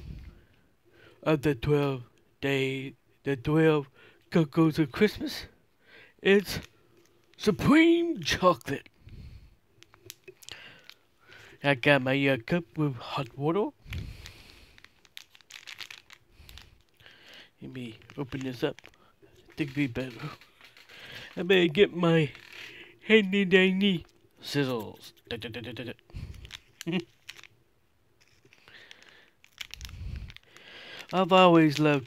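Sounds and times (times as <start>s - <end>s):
packet crinkling: 9.7s - 11.6s, 12.9s - 32.0s.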